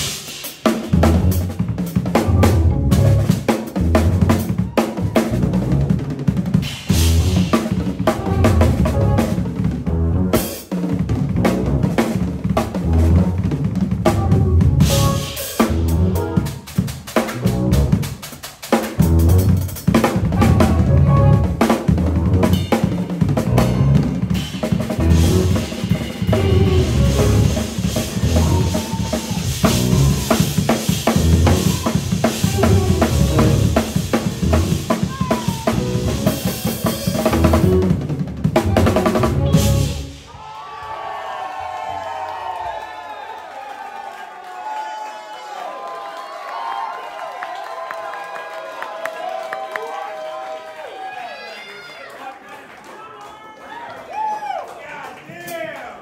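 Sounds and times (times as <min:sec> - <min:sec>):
bass: 0:00.0 - 0:40.3
drum kit playing jazz fusion: 0:00.0 - 0:40.4.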